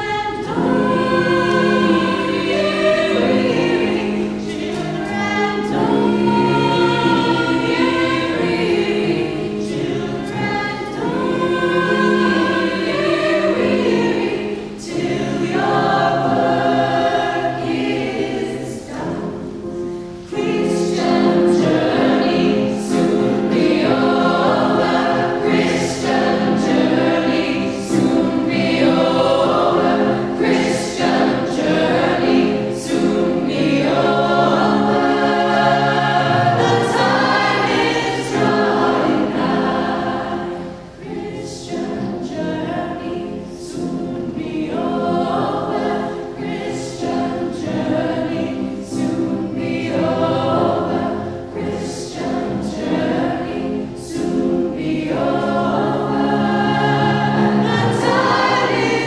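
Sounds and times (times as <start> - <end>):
choir singing: 0.0 - 59.0.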